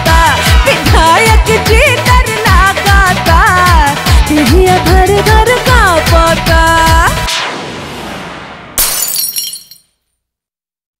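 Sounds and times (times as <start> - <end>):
glass shattering: 8.8 - 10.0.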